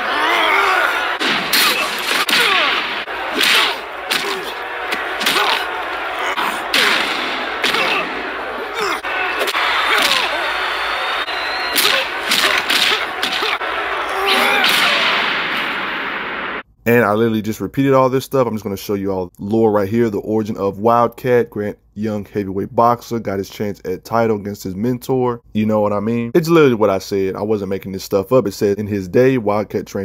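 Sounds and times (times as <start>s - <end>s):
grunt of effort: 5.3s - 9.2s.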